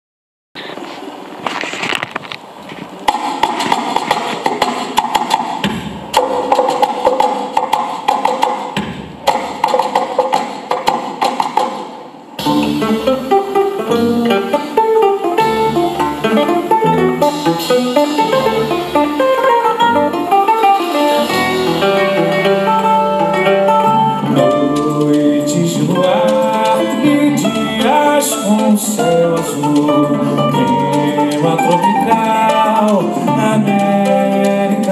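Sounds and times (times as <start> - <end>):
percussion: 3.1 - 13.4
mandolin playing: 6.1 - 11.5, 12.4 - 34.9
bass: 12.4 - 34.9.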